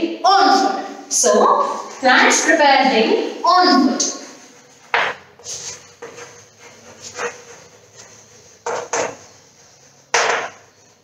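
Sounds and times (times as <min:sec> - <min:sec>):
chalk scratching on blackboard: 0:04.0 - 0:11.0.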